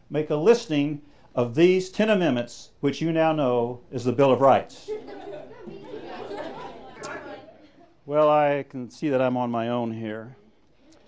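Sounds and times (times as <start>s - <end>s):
students chattering: 4.4s - 8.6s.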